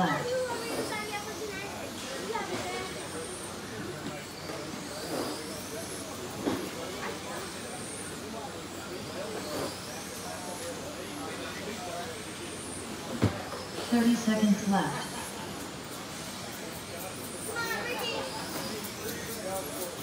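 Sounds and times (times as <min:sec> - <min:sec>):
rc car motors whining: 0:00.0 - 0:20.0
hiss of tyres and drivetrains: 0:00.2 - 0:14.1.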